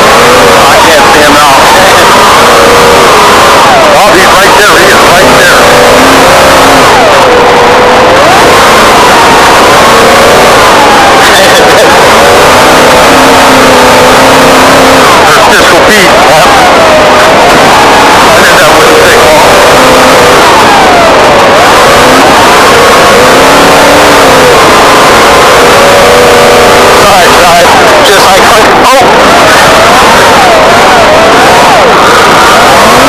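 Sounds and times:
truck engine revving: 0.0s - 33.0s.

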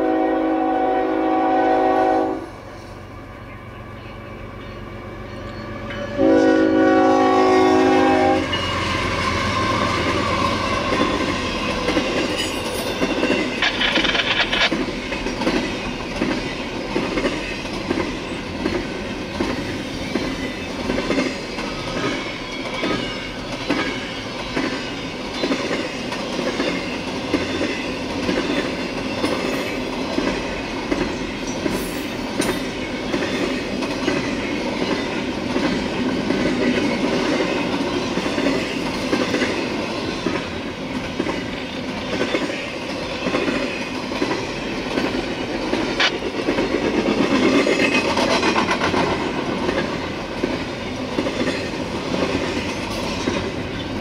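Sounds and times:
train horn: 0.0s - 2.7s, 5.3s - 10.8s
train wheels clacking over rails: 8.0s - 54.0s.

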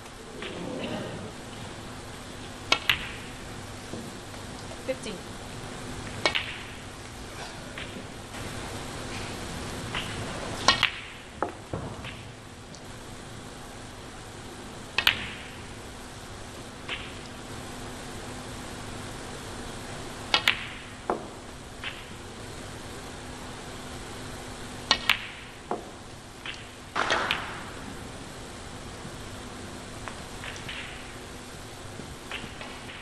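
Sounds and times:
faint steady hum: 0.0s - 33.0s
snooker balls clicking: 2.6s - 4.8s, 6.0s - 8.2s, 9.9s - 12.8s, 24.8s - 27.6s, 30.0s - 31.2s, 32.3s - 33.0s.

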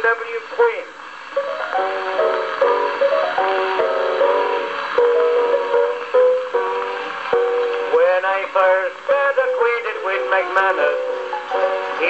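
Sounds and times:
piano on old gramophone record: 0.0s - 12.0s
man singing: 7.9s - 11.0s.

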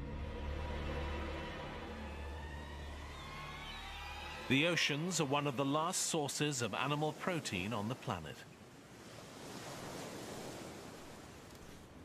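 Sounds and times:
waves breaking: 1.0s - 12.0s.

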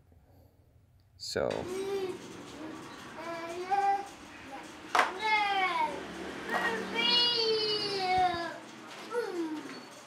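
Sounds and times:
child singing: 6.8s - 8.6s.

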